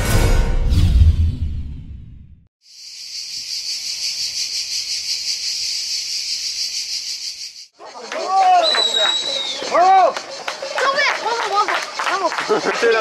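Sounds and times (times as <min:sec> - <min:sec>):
cicadas buzzing: 0:02.6 - 0:13.0.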